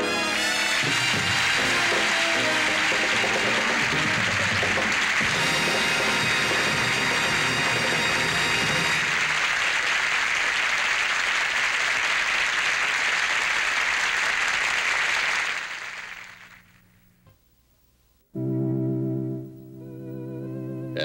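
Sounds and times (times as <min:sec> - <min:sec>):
show band held chord: 0:00.0 - 0:09.6
audience applauding: 0:00.2 - 0:16.8.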